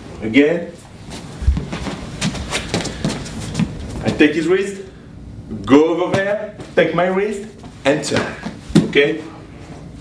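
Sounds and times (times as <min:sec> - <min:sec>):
feet shifting: 0:01.0 - 0:04.3, 0:07.6 - 0:09.9.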